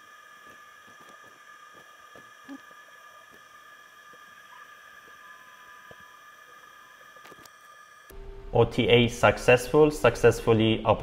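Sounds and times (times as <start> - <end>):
high-pitched electrical whine: 0.0 - 11.0.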